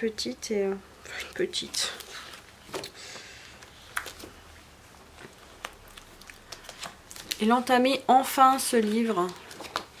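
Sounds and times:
book pages turning: 0:03.6 - 0:04.4, 0:05.1 - 0:07.7, 0:08.7 - 0:10.0.

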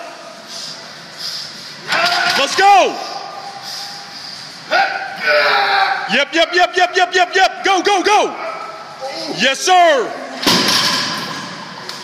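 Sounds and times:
background room noise: 0:00.0 - 0:12.0
man yelling loudly: 0:04.8 - 0:08.4.

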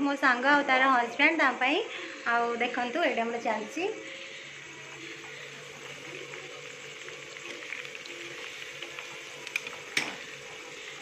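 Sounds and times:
oil sizzling while deep-frying: 0:00.0 - 0:11.0.

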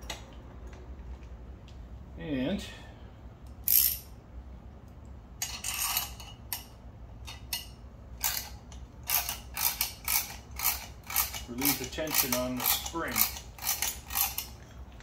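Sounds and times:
ratcheting wrench clicking: 0:03.5 - 0:04.1, 0:05.4 - 0:14.6.

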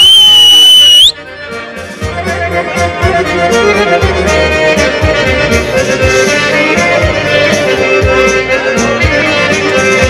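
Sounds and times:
piercing whistle: 0:00.0 - 0:01.2
accordion folk dance music: 0:00.0 - 0:10.0.

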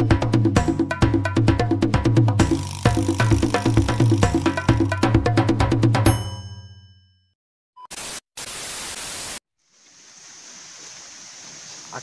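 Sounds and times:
faint high outdoor hiss: 0:09.2 - 0:12.0.

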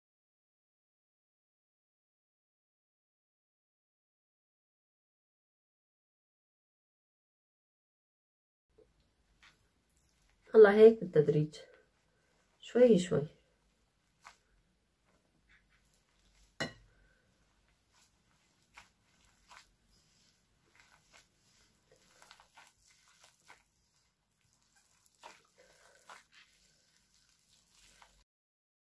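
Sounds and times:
faint rustling of dough: 0:08.7 - 0:28.3.

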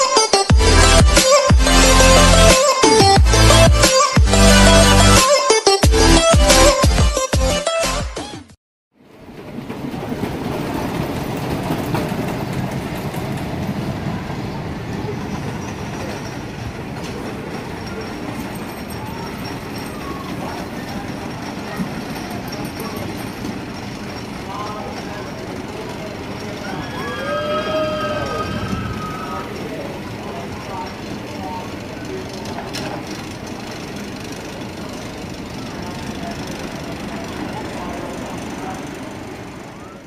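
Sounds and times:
roller coaster rumbling on track: 0:09.0 - 0:40.0.

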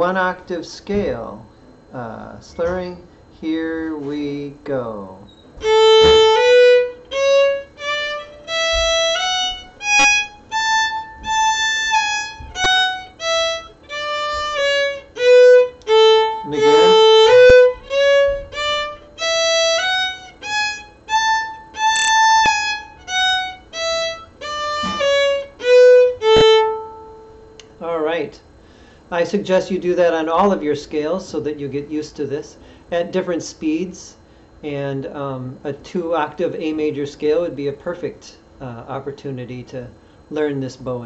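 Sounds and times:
violin playing a scale: 0:05.6 - 0:27.5.

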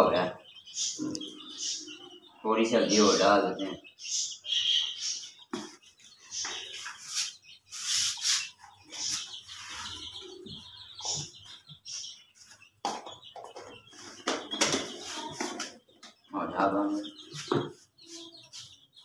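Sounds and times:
birds chirping: 0:00.0 - 0:19.0.

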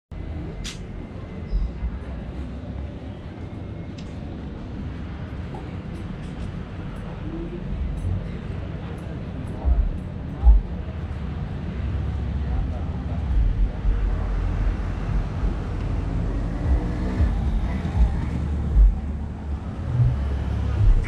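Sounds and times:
faint voices of passers-by: 0:00.1 - 0:21.0
low rumble of traffic: 0:00.1 - 0:21.0.

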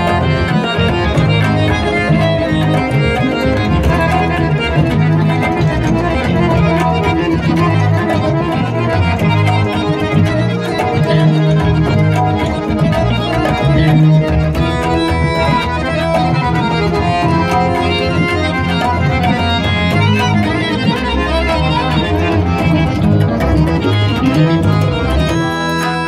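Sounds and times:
harmonium melody: 0:00.0 - 0:26.0.

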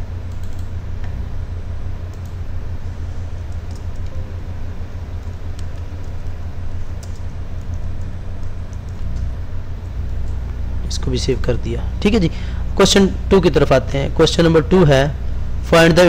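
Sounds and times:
low background hum: 0:00.0 - 0:16.0
computer keyboard clicks: 0:00.3 - 0:00.7, 0:03.5 - 0:04.1, 0:07.0 - 0:10.4.

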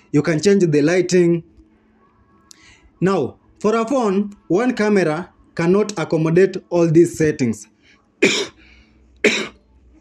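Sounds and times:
man coughing: 0:08.2 - 0:08.6, 0:09.2 - 0:09.6.

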